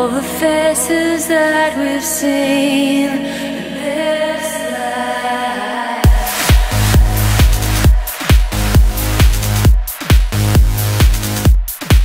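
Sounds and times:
synth chords: 0.0 - 12.0
deep bass line: 6.0 - 12.0
electronic dance music: 6.0 - 12.0
kick drum: 6.0 - 12.0.

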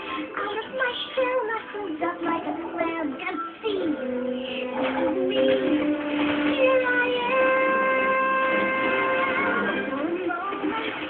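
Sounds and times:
music backing: 0.0 - 11.0
child singing: 0.2 - 11.0.

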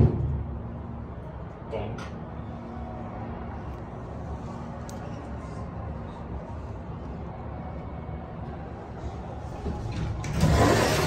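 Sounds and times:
elevator car hum: 0.0 - 11.0
elevator doors sliding open: 9.5 - 11.0.

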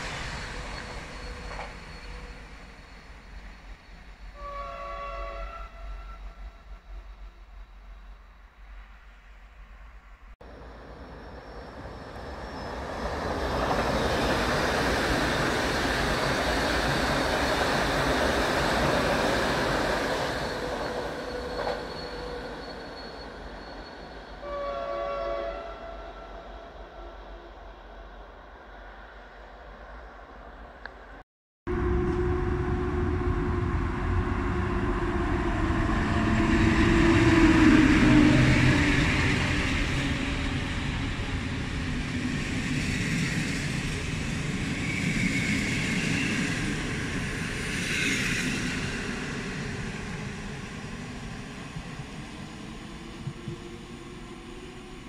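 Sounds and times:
rush of train wheels on rail: 0.0 - 4.6, 10.4 - 24.4, 31.7 - 55.0
passenger train rolling past: 0.0 - 55.0
train horn blast: 4.4 - 6.6, 24.4 - 27.5, 31.7 - 38.6.

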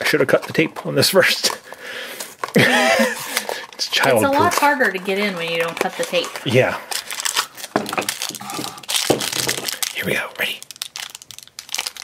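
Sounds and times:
foil wrapper crinkling: 0.3 - 12.0.

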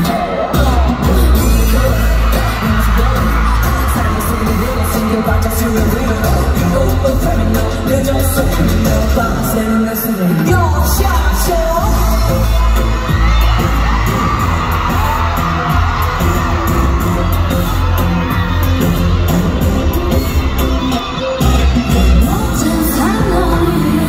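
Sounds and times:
heavy pulsing bass beat: 0.0 - 9.8, 10.5 - 24.0
pop song through arena speakers: 0.0 - 24.0
woman singing: 21.8 - 24.0.

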